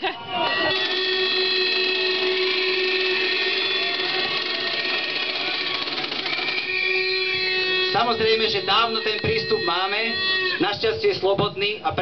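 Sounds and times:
crowd noise: 0:00.0 - 0:12.0
horns sounding a chord: 0:00.5 - 0:10.8.

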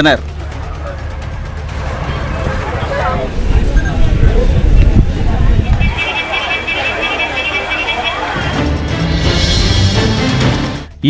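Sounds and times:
crowd chatter: 0:00.0 - 0:09.8
traffic: 0:00.0 - 0:10.7.

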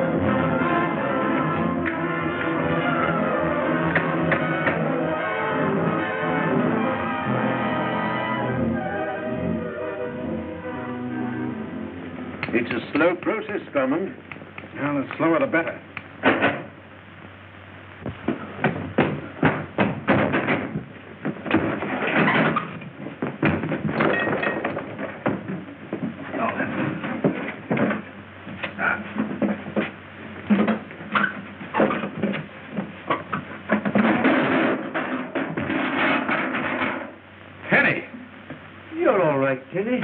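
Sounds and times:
film soundtrack music: 0:00.0 - 0:14.3
sharp knocks: 0:18.1 - 0:26.2.

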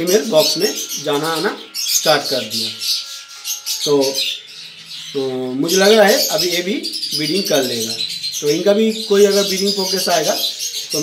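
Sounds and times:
caged birds chirping: 0:00.0 - 0:11.0.

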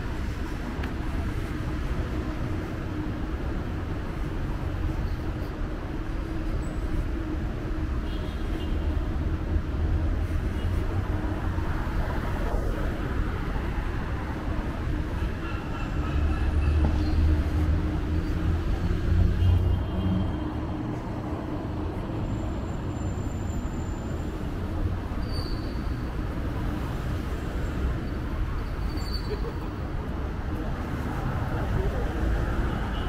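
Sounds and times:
city street traffic rumble: 0:00.0 - 0:33.0.

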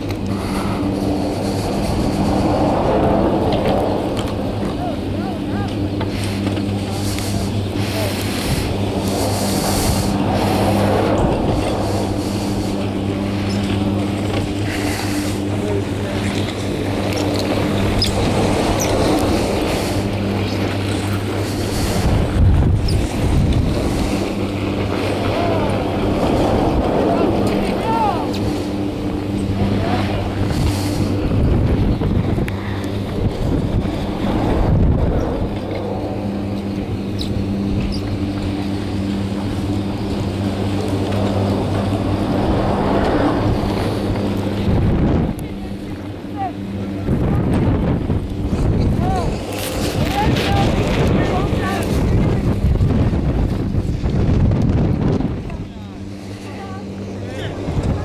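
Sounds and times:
chairlift machinery humming: 0:00.0 - 0:58.0
wind buffeting microphone: 0:00.0 - 0:58.0.

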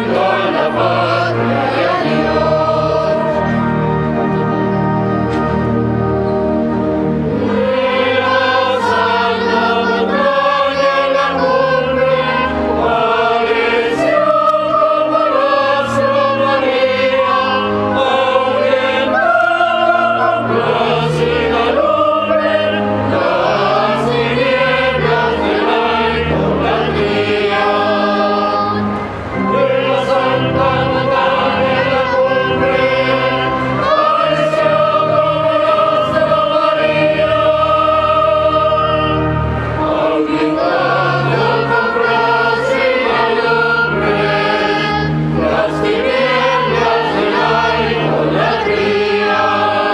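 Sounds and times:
church choir singing: 0:00.0 - 0:49.9
low sustained accompaniment: 0:00.0 - 0:49.9.

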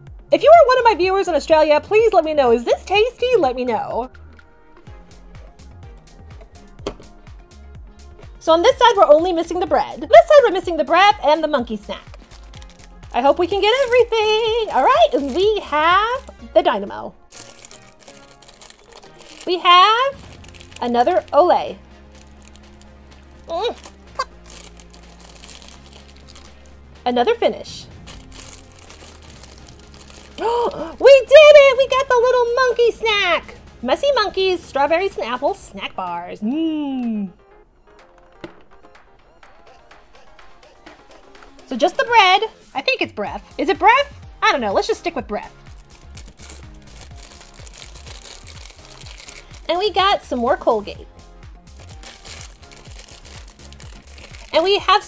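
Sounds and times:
background music with bass: 0:00.0 - 0:55.0
foil packet crinkling: 0:12.0 - 0:16.3, 0:17.3 - 0:26.8, 0:27.9 - 0:31.0, 0:45.6 - 0:49.9, 0:51.7 - 0:55.0.

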